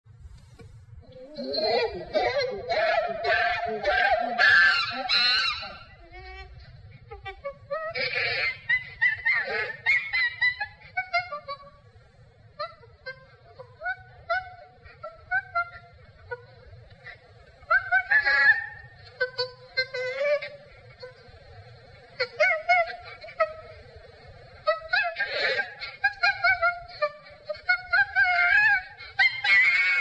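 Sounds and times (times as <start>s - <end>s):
chimpanzee screaming: 1.2s - 6.3s, 7.6s - 11.5s, 17.7s - 20.7s, 24.6s - 30.0s.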